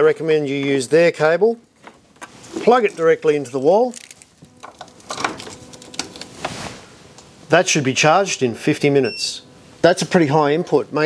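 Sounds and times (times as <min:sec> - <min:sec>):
cable rustle: 0:02.2 - 0:06.9.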